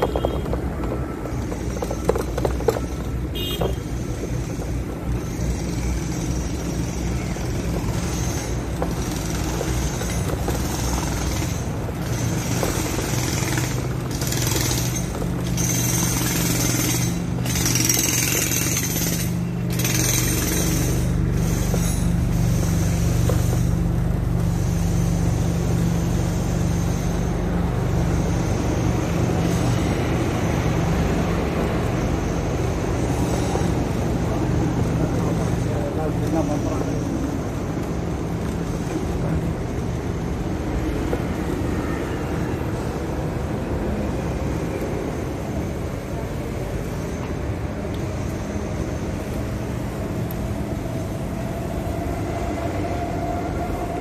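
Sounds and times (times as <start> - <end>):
bicycle riding rumble: 0.0 - 54.0.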